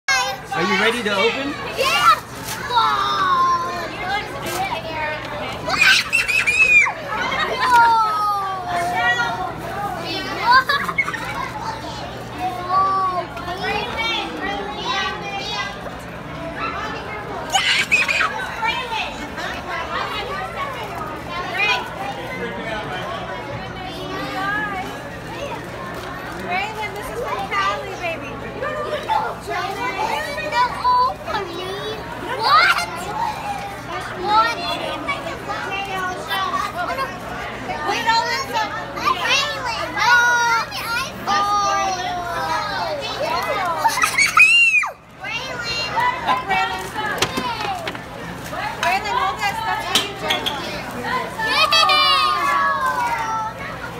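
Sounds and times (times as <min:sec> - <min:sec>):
background chatter: 0:00.1 - 0:53.9
children's excited voices: 0:00.1 - 0:53.9.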